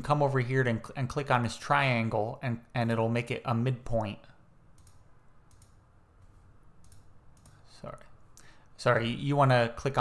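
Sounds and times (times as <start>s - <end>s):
computer mouse clicks: 4.7s - 7.6s.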